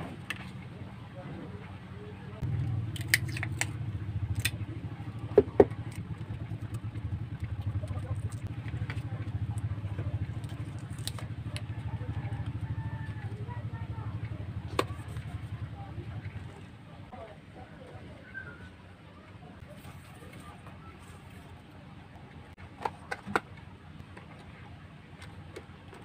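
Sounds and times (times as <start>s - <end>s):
steady low rumble: 0.0s - 17.1s.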